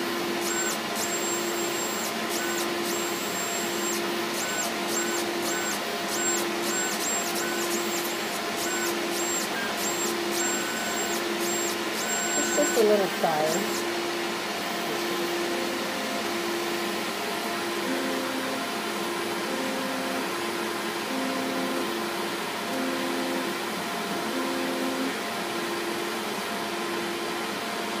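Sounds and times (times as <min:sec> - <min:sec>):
stepper motors humming: 0:00.2 - 0:13.9.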